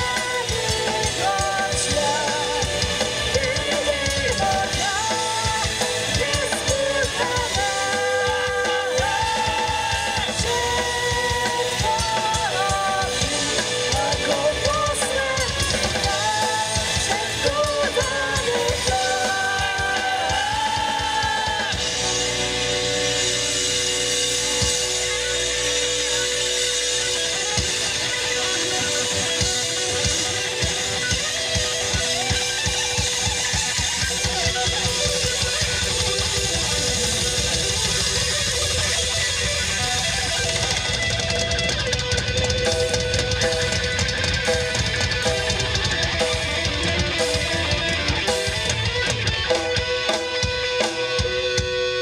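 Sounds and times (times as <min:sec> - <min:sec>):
person singing: 0:00.0 - 0:22.5
live rock band playing: 0:00.0 - 0:52.0
sustained electric guitar notes: 0:00.0 - 0:52.0.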